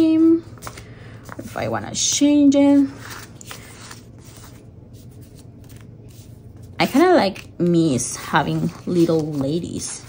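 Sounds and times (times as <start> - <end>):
low steady hum: 0.0 - 10.0
sticker sheets rustling: 2.6 - 10.0.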